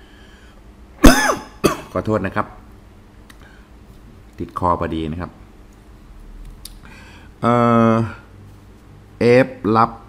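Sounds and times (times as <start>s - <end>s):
man coughing: 1.0s - 2.0s.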